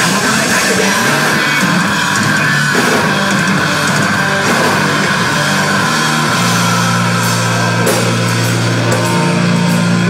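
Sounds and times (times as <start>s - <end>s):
live rock band with electric guitars: 0.0s - 10.0s.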